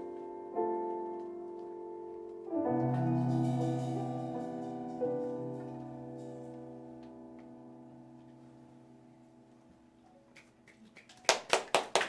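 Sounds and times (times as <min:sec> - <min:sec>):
audience clapping: 0:10.3 - 0:12.0.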